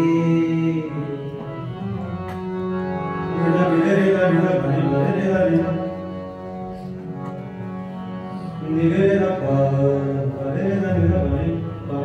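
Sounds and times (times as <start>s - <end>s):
man singing a devotional melody: 0.0s - 1.6s, 3.3s - 6.1s, 8.6s - 12.0s
harmonium chords: 0.0s - 12.0s.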